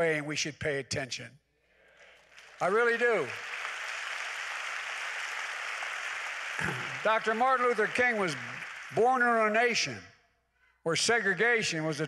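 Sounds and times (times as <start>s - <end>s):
congregation applauding: 2.0s - 10.0s.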